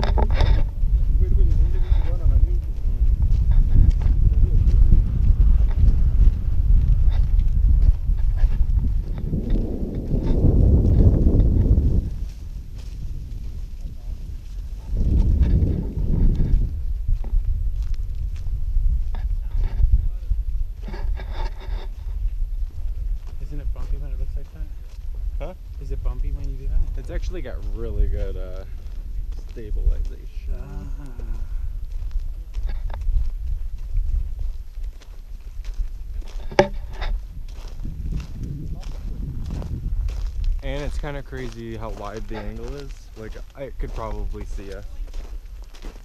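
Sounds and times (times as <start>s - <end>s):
wind buffeting microphone: 0.0s - 46.0s
faint voices: 28.5s - 31.8s.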